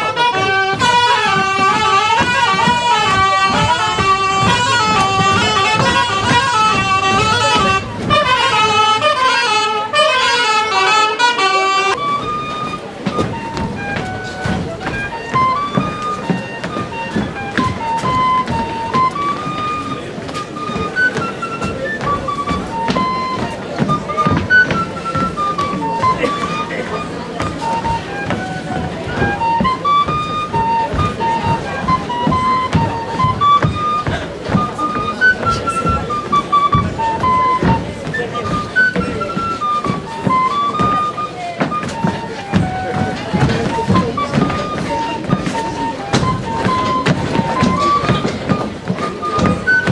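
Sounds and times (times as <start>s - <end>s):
dancers' shoes tapping on stage: 0.0s - 49.9s
folk dance band music: 0.0s - 49.9s.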